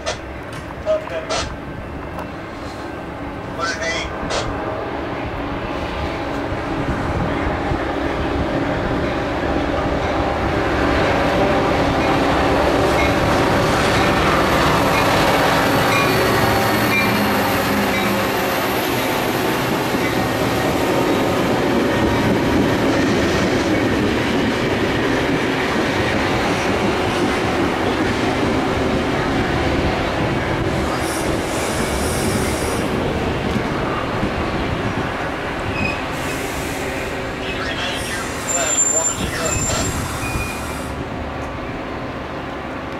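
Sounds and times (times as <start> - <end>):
diesel locomotive engine: 0.0 - 42.9
train cars rumbling: 0.0 - 42.9
train brakes squealing: 35.7 - 41.0.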